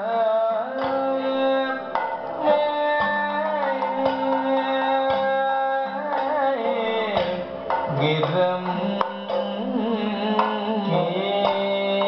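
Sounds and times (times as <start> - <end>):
person singing sliding notes: 0.0 - 12.0
sharp percussion strokes: 0.0 - 12.0.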